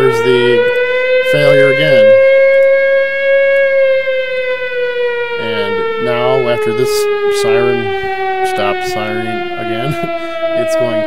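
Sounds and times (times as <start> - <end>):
siren alarm tone sinking in pitch: 0.0 - 11.0.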